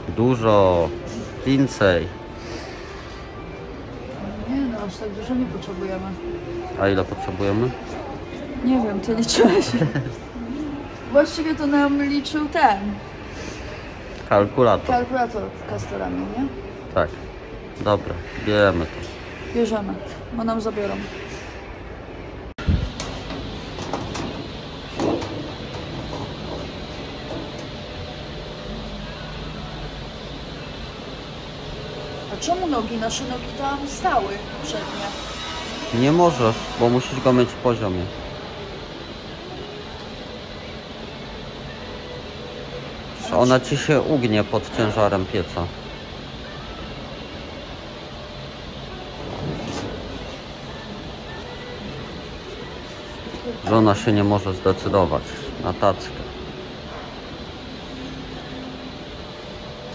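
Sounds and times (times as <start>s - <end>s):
low rumbling background noise: 0.0s - 59.9s
store interior hum and hiss: 0.0s - 59.9s.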